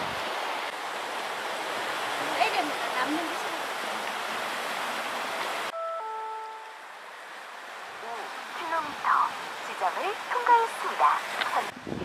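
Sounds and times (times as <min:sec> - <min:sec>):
surf on pebble beach: 0:06.5 - 0:12.0.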